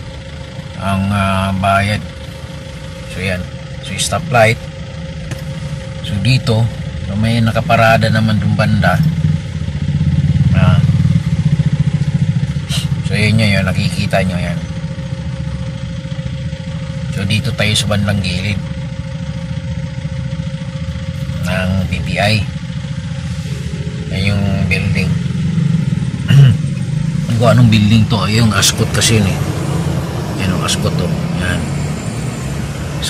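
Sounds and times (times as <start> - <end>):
vehicle engine idling: 0.0 - 33.0.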